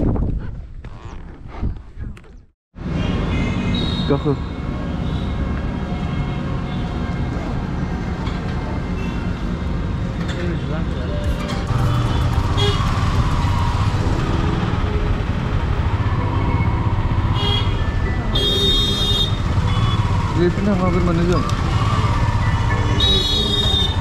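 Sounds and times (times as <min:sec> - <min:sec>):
road noise: 0:02.0 - 0:24.0
motorcycle engine: 0:11.2 - 0:24.0
vehicle horn: 0:11.7 - 0:13.2, 0:17.2 - 0:20.2, 0:22.8 - 0:24.0.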